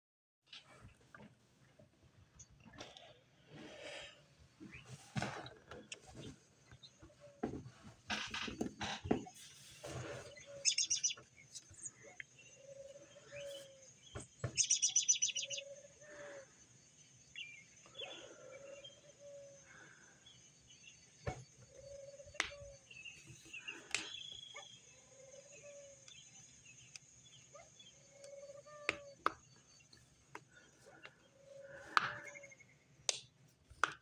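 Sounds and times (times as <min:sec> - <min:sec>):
mourning doves cooing: 0:04.7 - 0:32.8
small bird's rapid high trill: 0:10.6 - 0:11.2.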